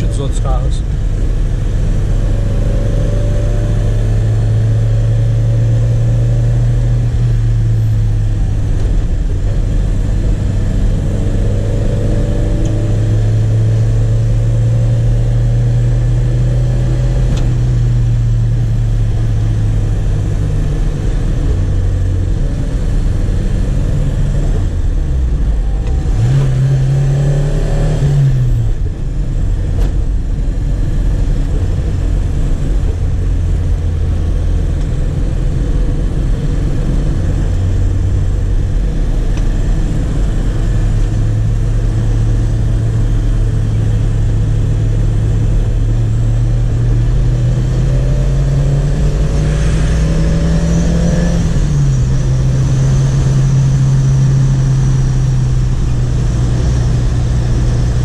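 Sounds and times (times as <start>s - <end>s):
car engine heard from inside: 0.0s - 58.0s.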